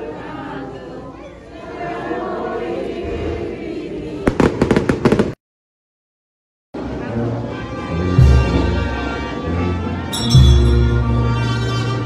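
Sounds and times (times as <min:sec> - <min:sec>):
crowd singing: 0:00.0 - 0:05.2
firecrackers banging: 0:04.2 - 0:05.4.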